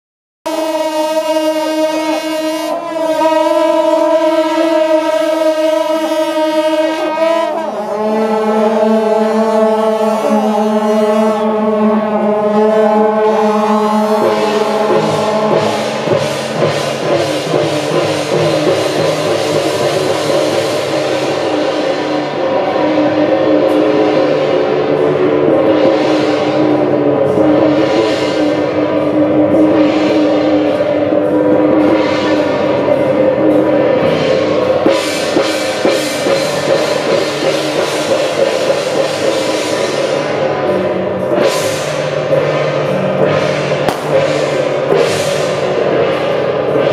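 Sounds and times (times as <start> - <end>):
procession horns blowing long notes: 0.5 - 46.9
struck percussion: 11.3 - 46.9.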